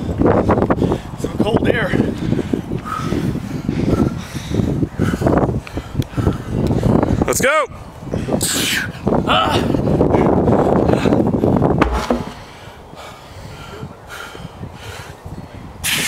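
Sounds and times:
tire thudding on ground: 11.8 - 12.5.

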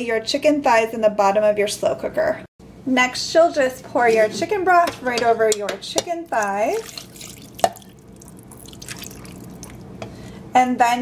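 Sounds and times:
broth pouring into a pot: 6.4 - 10.0.

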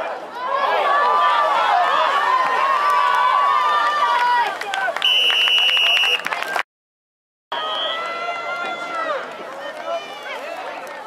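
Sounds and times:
referee's whistle blast: 5.0 - 6.2.

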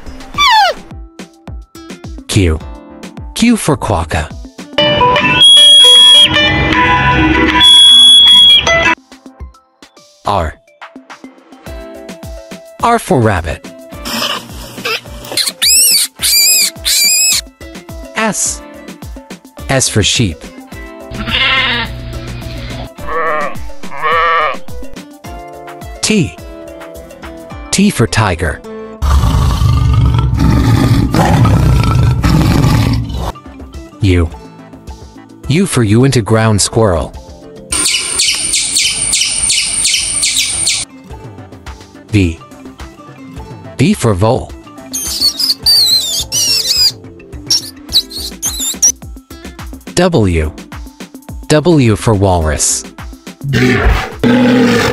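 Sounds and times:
background music: 0.0 - 54.9
rabbit squealing: 0.3 - 0.9, 14.1 - 17.4, 21.1 - 22.0, 23.0 - 24.9, 44.9 - 49.0
ground squirrel chirping: 15.4 - 17.4, 37.8 - 40.9, 44.9 - 49.0.

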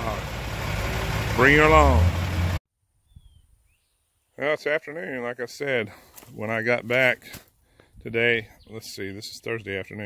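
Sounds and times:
engine idling: 0.0 - 2.6
outdoor noise: 0.0 - 10.0
faint bird chirps: 3.0 - 4.4.

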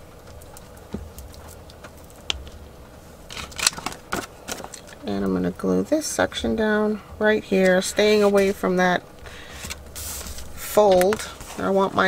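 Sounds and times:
paper rustling: 9.4 - 12.0.

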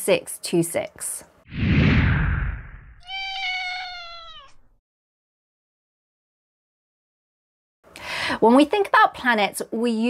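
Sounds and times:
loud whoosh: 1.5 - 3.0
cat meow dropping in pitch: 3.0 - 4.8.

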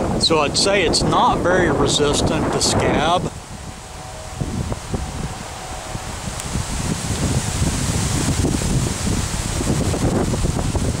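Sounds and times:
wind gusting over microphone: 0.0 - 11.0
leaves rustling: 2.2 - 11.0.

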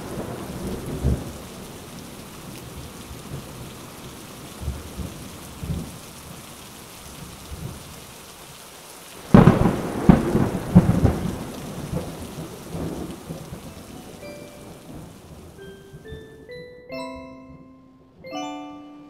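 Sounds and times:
thunderclap rumbling: 0.0 - 1.4, 9.2 - 15.6
rain falling: 0.0 - 17.2.

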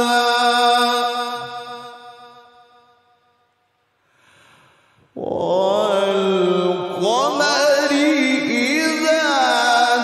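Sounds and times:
man reciting melodically: 0.0 - 2.6, 5.1 - 10.0.

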